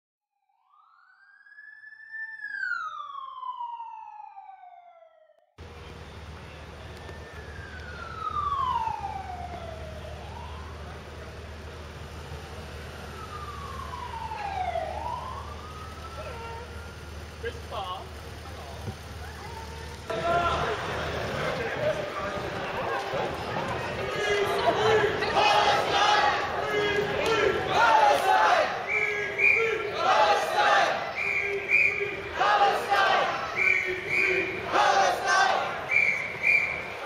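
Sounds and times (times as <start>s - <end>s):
police motorcycle siren: 0.4s - 37.0s
traffic hum: 5.6s - 37.0s.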